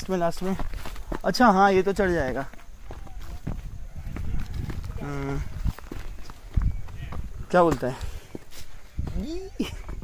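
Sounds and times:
footsteps on dirt and stone path: 0.0s - 10.0s.

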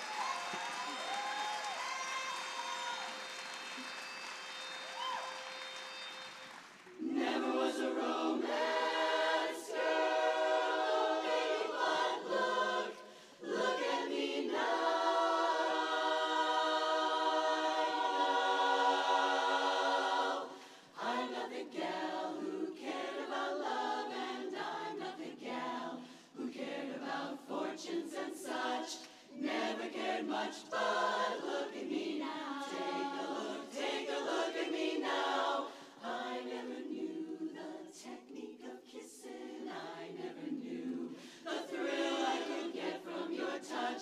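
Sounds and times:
women's chorus singing a cappella: 7.0s - 44.0s.

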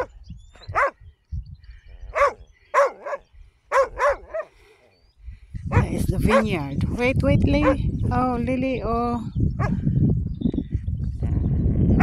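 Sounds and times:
dog barking: 0.7s - 1.0s, 2.1s - 4.5s, 5.7s - 6.6s, 7.6s - 7.8s.

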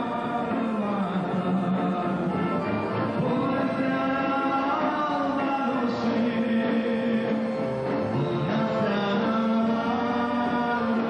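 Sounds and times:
amplified backing music: 0.0s - 11.0s.

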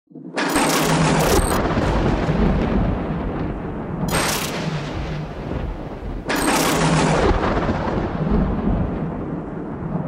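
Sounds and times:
deep rumbling boom: 1.6s - 6.3s, 6.9s - 10.0s.

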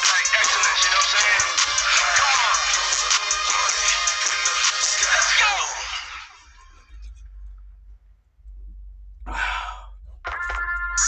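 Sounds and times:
background music: 0.0s - 11.0s
man sighing: 9.2s - 10.0s.

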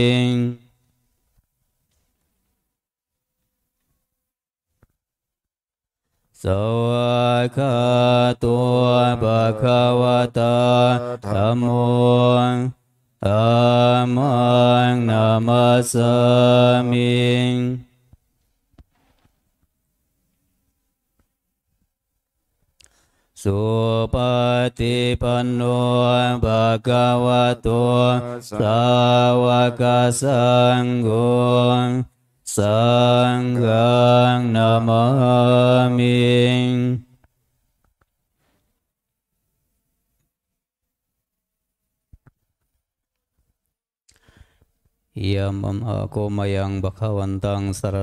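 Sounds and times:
monks chanting: 6.4s - 17.8s, 23.5s - 36.5s.

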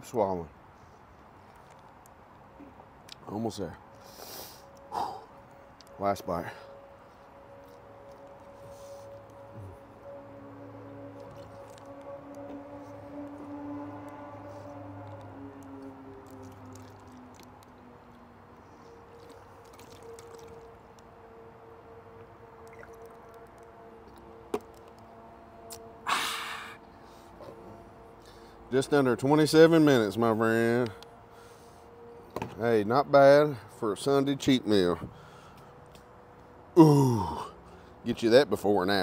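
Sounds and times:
aircraft passing overhead: 2.4s - 39.0s.

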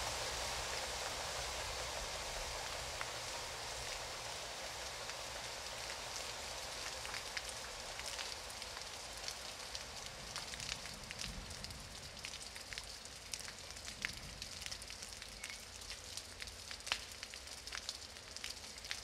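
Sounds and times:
crackling drips and spatters: 0.0s - 19.0s
water splashing on wet pavement: 0.0s - 19.0s.

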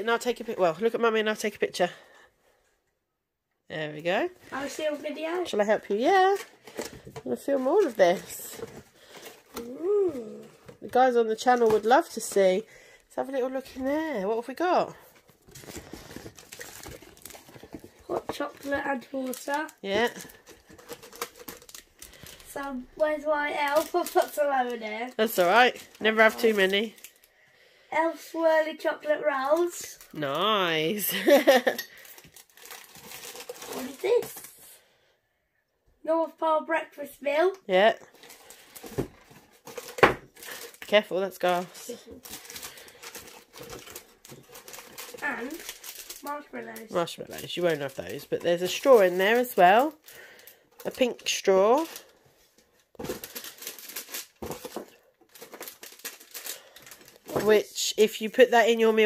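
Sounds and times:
plastic wrapping rustling: 4.2s - 27.8s, 28.4s - 34.8s, 37.8s - 59.0s
paper sachet crackling: 15.4s - 27.3s, 31.5s - 34.6s, 38.1s - 52.2s, 53.0s - 59.0s.

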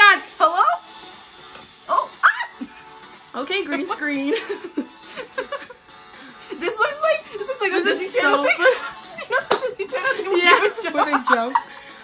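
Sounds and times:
women laughing loudly: 4.0s - 5.8s, 6.6s - 11.9s
hand smack: 9.5s - 9.7s.

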